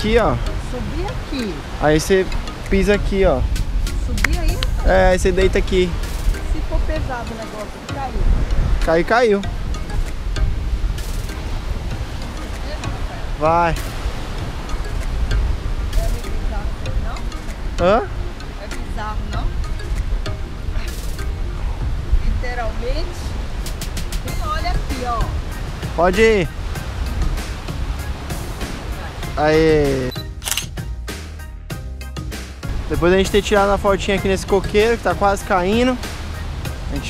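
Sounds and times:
wind buffeting microphone: 0.0s - 30.1s
sea surf: 0.0s - 30.2s, 32.7s - 37.0s
background music: 0.0s - 37.0s
camera shutter click: 30.4s - 30.7s.

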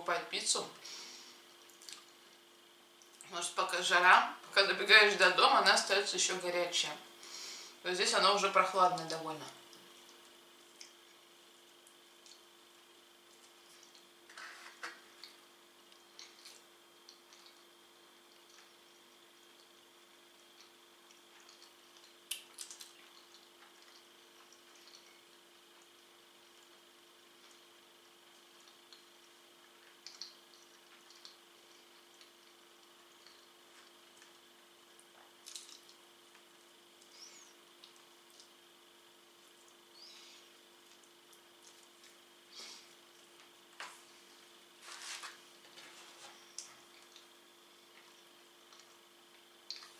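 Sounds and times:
faint steady hum: 0.0s - 49.9s
person chewing: 1.6s - 2.3s, 15.2s - 19.7s, 20.3s - 26.0s, 28.3s - 37.1s, 46.4s - 49.9s
wet mouth clicks: 1.7s - 2.1s, 49.7s - 49.9s.

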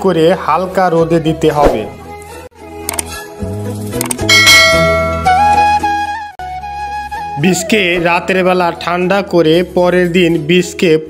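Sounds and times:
background music: 0.0s - 11.0s
short clicks: 2.8s - 3.2s
bright bell ding: 4.3s - 5.5s.

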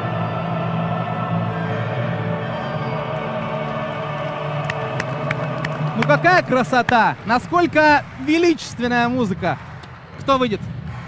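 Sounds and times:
orchestral anthem music: 0.0s - 9.8s
crowd clapping: 3.6s - 11.0s.

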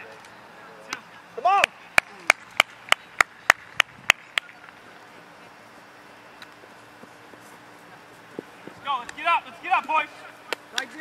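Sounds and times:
person clapping hands: 1.6s - 4.6s.

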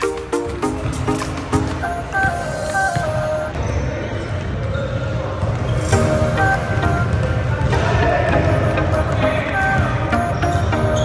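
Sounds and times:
background music: 0.0s - 3.6s, 5.9s - 11.0s.

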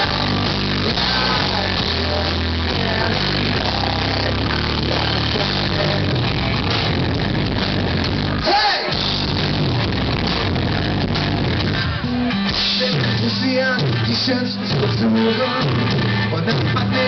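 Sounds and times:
bass guitar notes: 0.0s - 17.0s
drums: 0.0s - 17.0s
electric guitar: 0.0s - 17.0s.

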